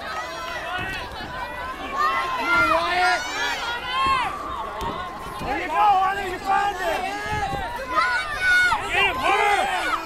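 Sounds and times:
crowd shouting: 0.0 - 10.0.

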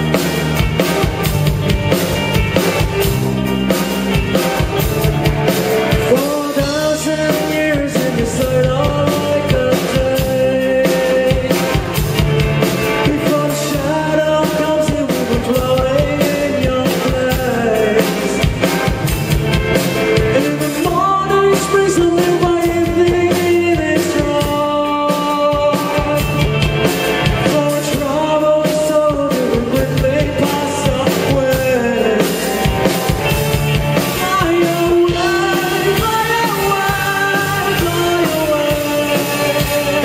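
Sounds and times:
bass guitar: 0.0 - 40.0
electric guitars: 0.0 - 40.0
rock band playing: 0.0 - 40.0
man singing: 5.8 - 19.2, 20.0 - 40.0.

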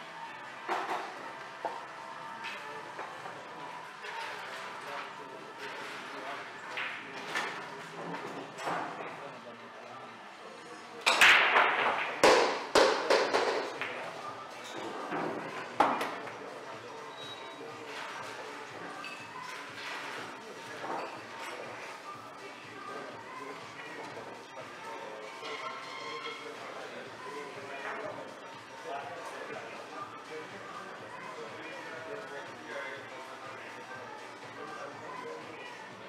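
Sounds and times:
murmur of voices: 0.0 - 36.0
pool balls clacking: 11.1 - 14.0.

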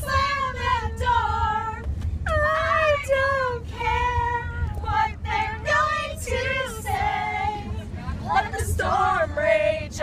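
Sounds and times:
vehicle road noise rumble: 0.0 - 10.0
young female voices singing: 0.0 - 10.0.

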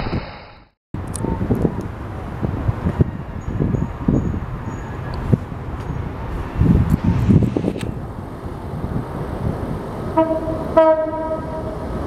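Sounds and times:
locomotive engine rumble: 1.0 - 12.0
wind buffeting microphone: 1.0 - 12.0.

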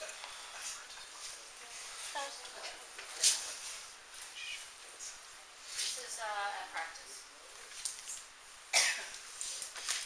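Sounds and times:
person coughing: 8.8 - 9.2.

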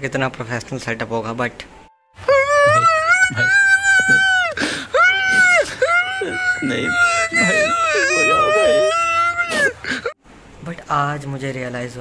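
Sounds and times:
man wailing comically: 2.2 - 10.2.

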